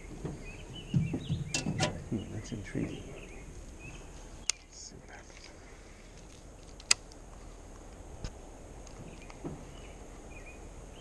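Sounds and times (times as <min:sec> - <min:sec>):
faint bird chirps: 0:00.0 - 0:06.1, 0:09.0 - 0:11.0
dull knocks in metal boat: 0:00.2 - 0:02.0
sharp clicks: 0:06.7 - 0:07.2.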